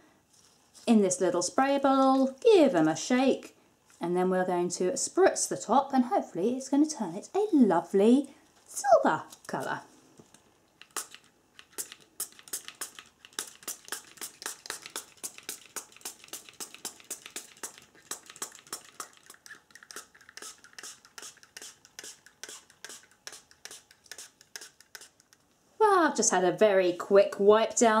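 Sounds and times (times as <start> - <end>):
spray bottle spritzes: 10.8 - 25.2.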